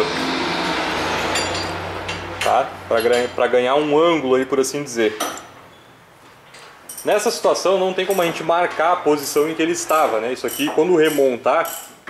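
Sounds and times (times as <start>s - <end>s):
metal bolt clinking on metal: 1.3s - 3.4s, 5.2s - 5.6s, 6.5s - 7.4s, 9.2s - 12.0s.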